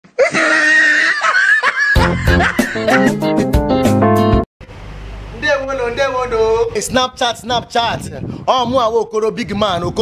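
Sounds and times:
man laughing high-pitched: 0:00.2 - 0:03.5.

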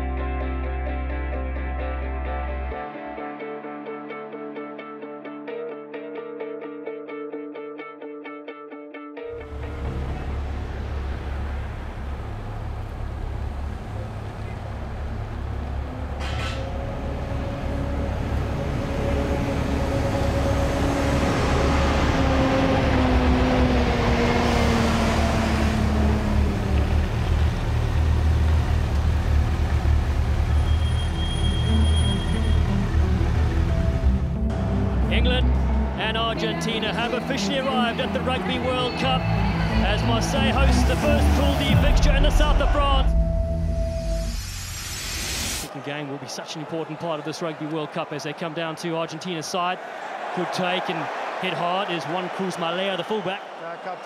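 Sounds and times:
plucked-string music: 0:00.0 - 0:10.8
coach driving past: 0:09.4 - 0:44.3.

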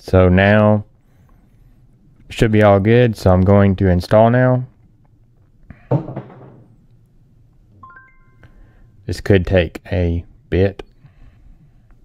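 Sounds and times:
rising electronic chime: 0:07.8 - 0:08.5.

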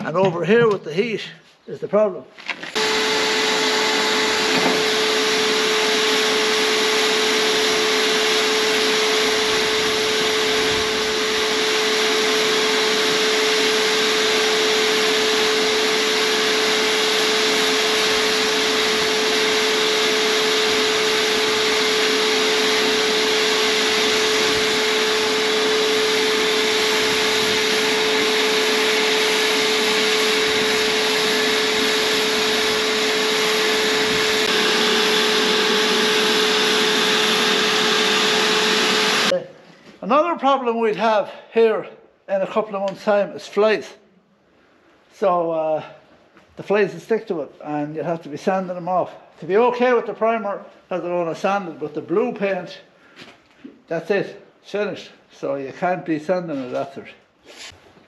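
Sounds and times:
paint sprayer unit humming: 0:02.6 - 0:39.8.

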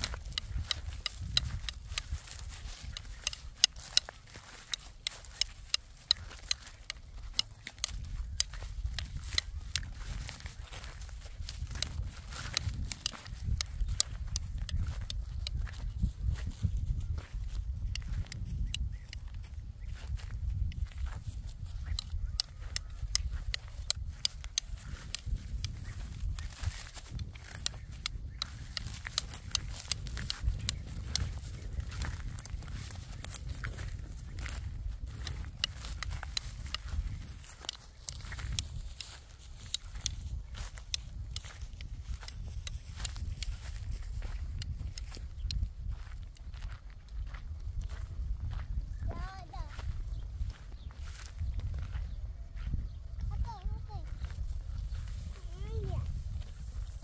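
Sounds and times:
footsteps crunching through stubble: 0:00.0 - 0:57.0.

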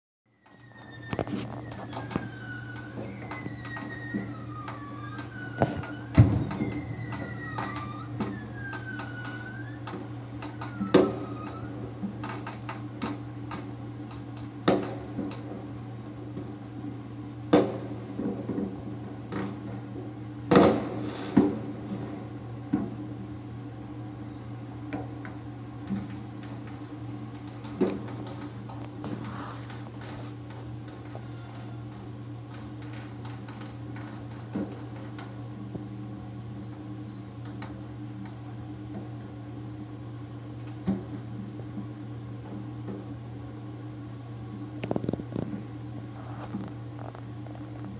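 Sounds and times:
steady low hum: 0:00.3 - 0:47.9
distant fireworks bangs: 0:00.4 - 0:16.7, 0:17.5 - 0:23.1, 0:25.0 - 0:35.3.

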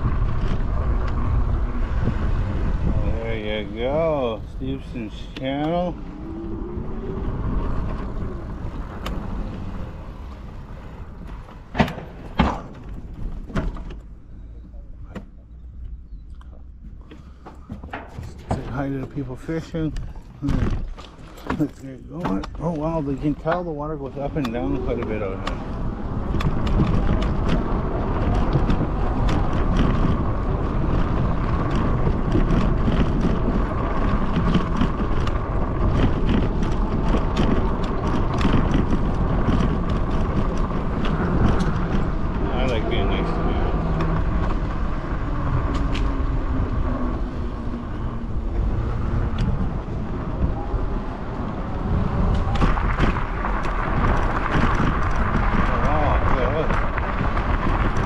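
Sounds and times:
bike tyres rumbling on boardwalk: 0:00.0 - 0:58.0.

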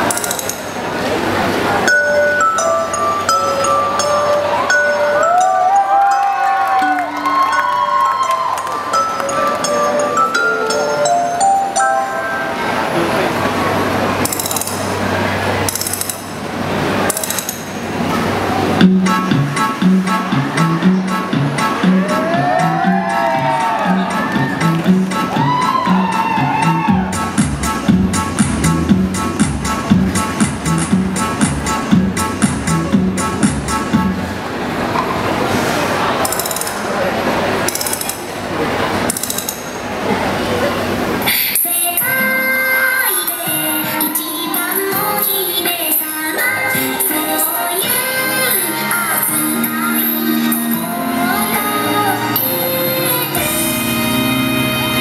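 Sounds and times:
music box tune: 0:01.8 - 0:12.9
audience applauding: 0:05.6 - 0:09.6.

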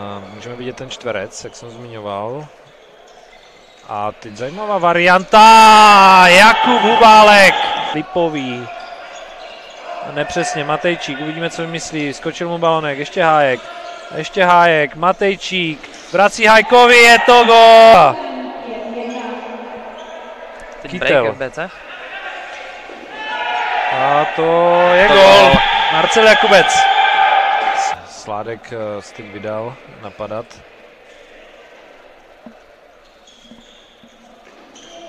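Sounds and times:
voices and shouts in a hall: 0:00.0 - 0:33.3.

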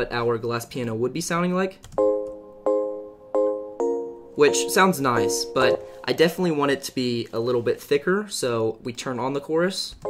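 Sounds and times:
piano chords ringing: 0:02.0 - 0:06.9.

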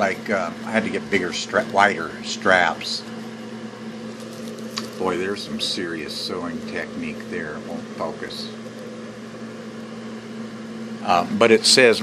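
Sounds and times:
motor hum: 0:00.0 - 0:12.0.

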